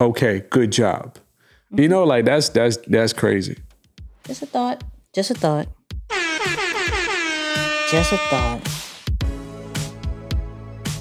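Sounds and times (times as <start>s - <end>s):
music beat with low thuds: 3.6s - 11.0s
air horn blast sliding down: 6.1s - 8.7s.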